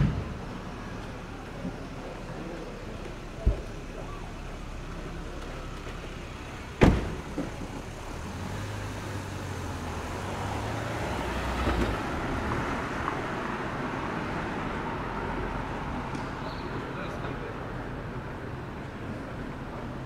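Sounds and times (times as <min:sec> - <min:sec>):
car door slamming: 0:06.7 - 0:07.9.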